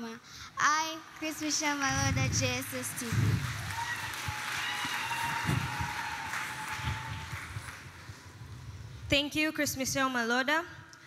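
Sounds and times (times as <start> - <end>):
audience applause: 2.8 - 8.4.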